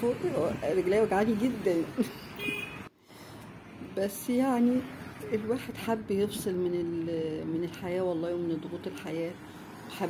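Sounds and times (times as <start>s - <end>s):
passing cars: 0.0s - 10.0s.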